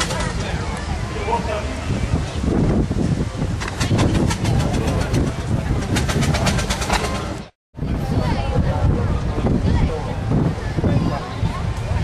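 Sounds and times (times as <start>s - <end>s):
machine clicking rapidly: 3.6s - 7.4s.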